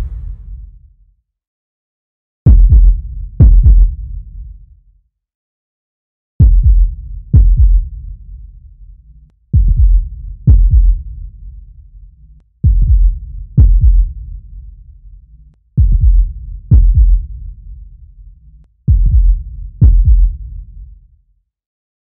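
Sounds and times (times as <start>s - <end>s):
deep booming thuds: 0.0s - 0.7s.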